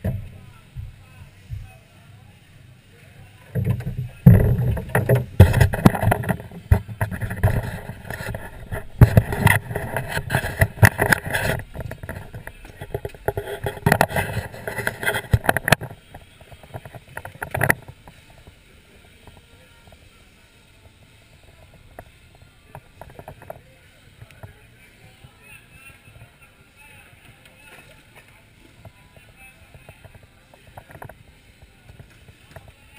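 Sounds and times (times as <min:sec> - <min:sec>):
camera handling rubbing and scraping: 0:04.6 - 0:18.0.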